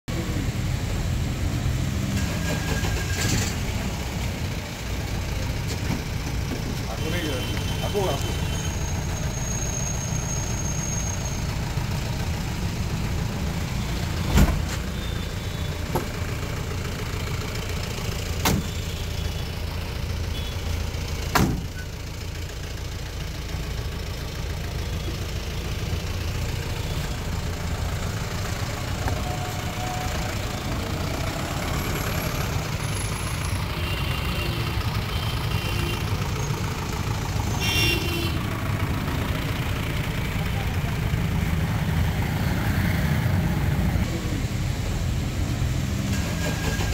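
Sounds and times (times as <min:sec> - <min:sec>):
road traffic rumble: 0:00.1 - 0:46.9.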